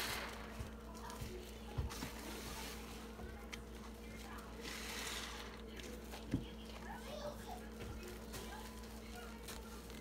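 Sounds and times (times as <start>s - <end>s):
sponges squishing in soapy water: 0.1s - 10.0s.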